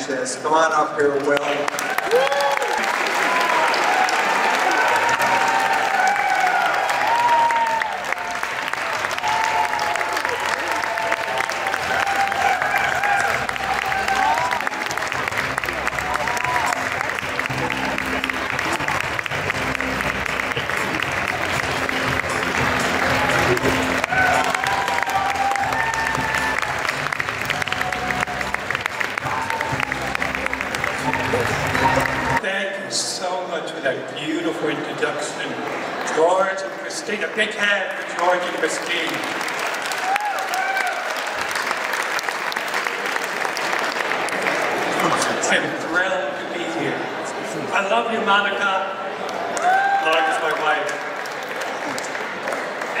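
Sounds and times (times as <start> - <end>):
audience applause: 1.0 - 32.4, 35.4 - 46.0, 49.2 - 53.0
music playing: 3.4 - 33.4.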